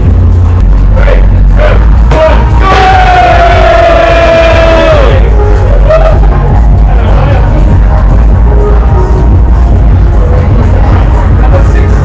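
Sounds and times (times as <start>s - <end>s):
music with heavy bass: 0.0s - 12.0s.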